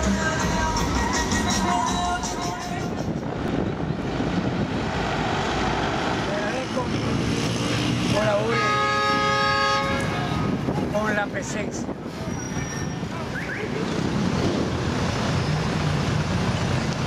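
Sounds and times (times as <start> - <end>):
vehicles passing: 0.0 - 17.0.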